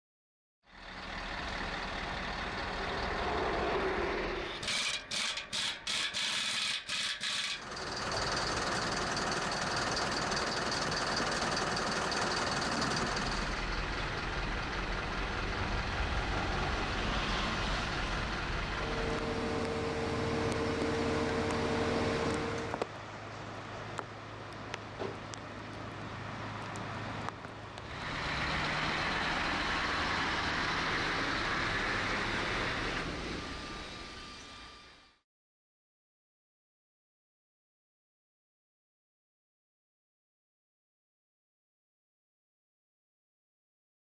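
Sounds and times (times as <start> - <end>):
diesel truck engine running: 0.7 - 4.5, 7.6 - 23.5, 26.1 - 33.6.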